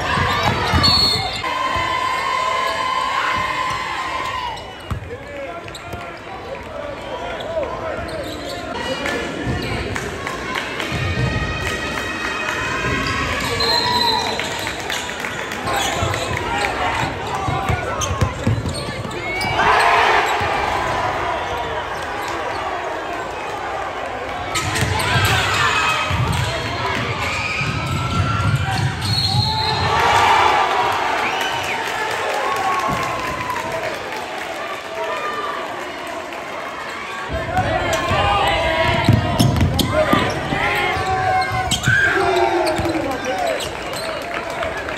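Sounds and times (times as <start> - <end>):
crowd and player voices echoing: 0.0 - 44.9
shoes squeaking: 7.4 - 8.8.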